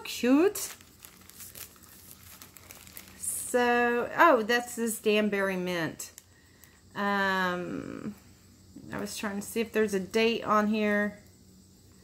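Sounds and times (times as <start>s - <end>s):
low steady hum: 0.0s - 12.0s
rustling of small object handled: 0.5s - 3.5s.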